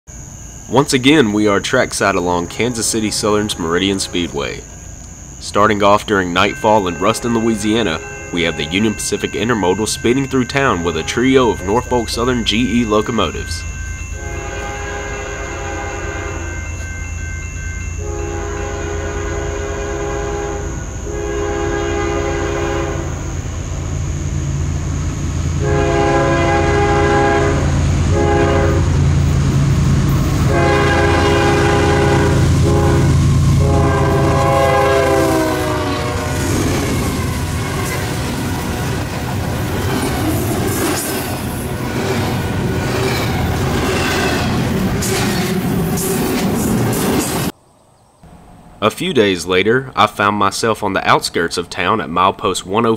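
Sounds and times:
locomotive engines rumbling: 0.1 - 47.6
locomotive air horns: 2.3 - 5.4, 7.0 - 8.7, 14.1 - 16.6, 18.0 - 23.6, 25.6 - 29.2, 30.4 - 38.8.

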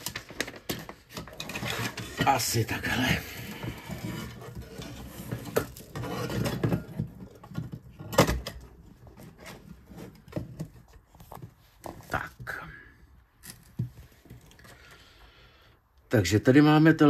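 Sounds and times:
cable bundle rustling and scraping: 0.0 - 15.2.

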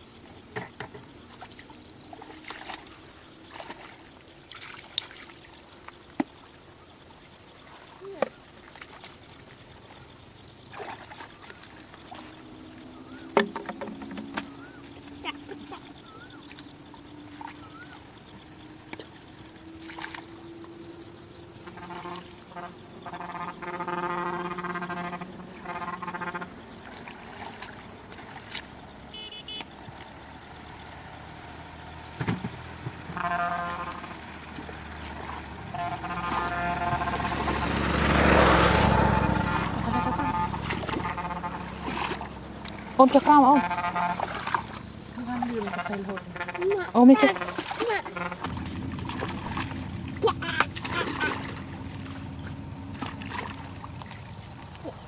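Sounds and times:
water sloshing from wading: 0.0 - 55.0
faint high chirp: 14.3 - 21.8
drawn-out pitched calls: 14.4 - 19.8, 20.4 - 28.1, 28.8 - 52.9.

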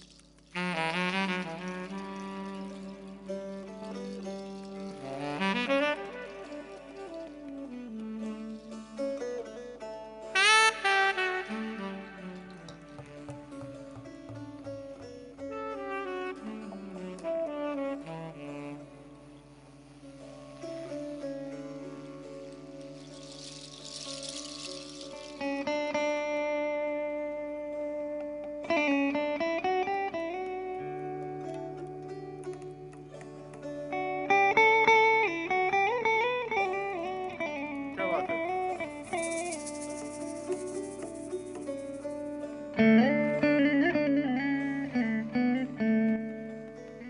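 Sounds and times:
tenor saxophone solo: 0.5 - 9.7, 10.3 - 14.6, 15.5 - 22.3.

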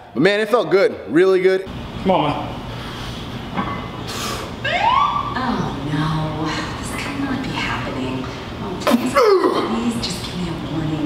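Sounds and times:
rising siren whoop: 4.6 - 5.4.

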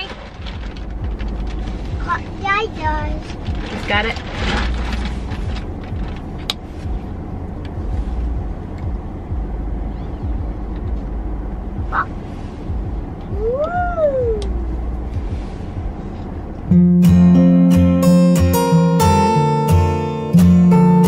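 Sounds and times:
low vehicle cabin rumble: 0.0 - 21.0.

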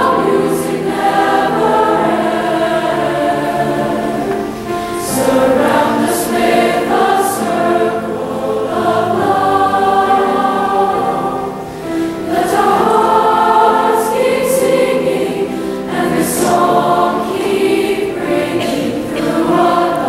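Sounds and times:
choir singing sustained chords: 0.0 - 20.0.

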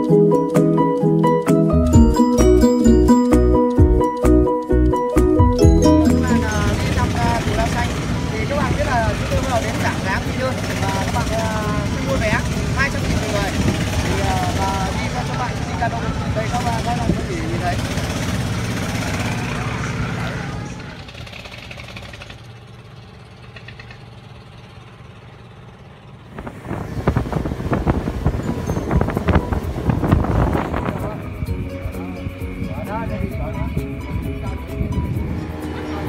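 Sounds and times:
low engine rumble: 0.0 - 36.0
man talking: 6.0 - 17.8, 32.6 - 34.8.

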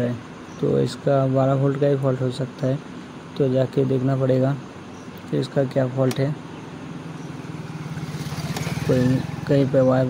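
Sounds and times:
motor vehicle buzzing engine: 4.6 - 10.0.

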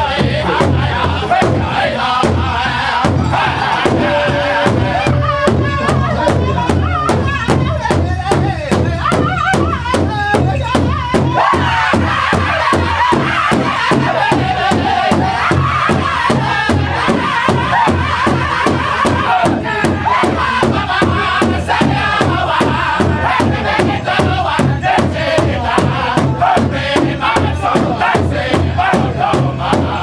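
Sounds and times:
large drum beating steadily: 0.0 - 30.0
men singing chant-like song: 0.0 - 30.0.

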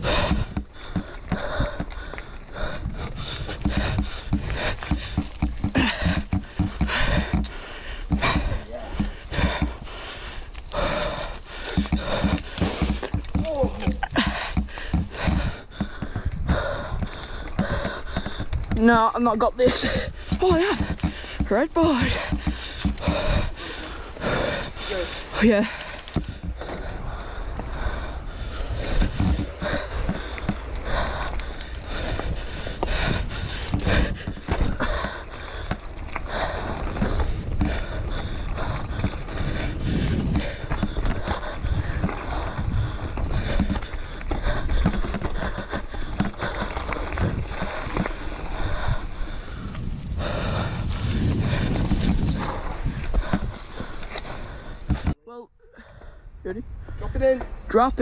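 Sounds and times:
bike knocking and rattling: 0.0 - 55.2
tyres rumbling on dirt: 0.0 - 55.2.

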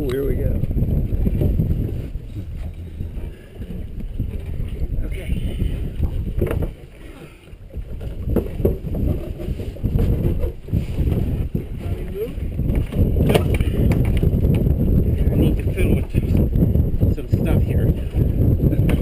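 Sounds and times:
water sounds: 0.0 - 19.0
wind buffeting microphone: 0.0 - 19.0.

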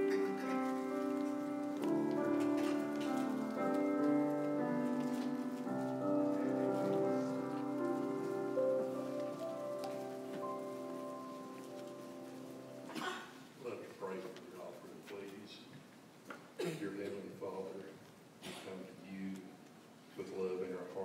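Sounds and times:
keyboard playing slow held chords: 0.0 - 12.9.

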